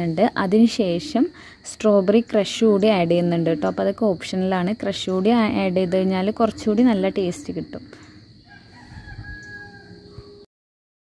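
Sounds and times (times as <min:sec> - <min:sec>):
rooster crowing: 0:08.4 - 0:10.5.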